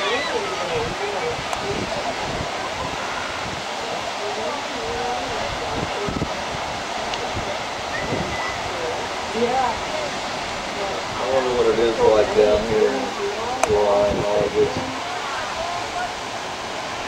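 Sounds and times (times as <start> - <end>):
faint indistinct voices: 0.0 - 16.4
ocean surf breaking: 0.0 - 17.0.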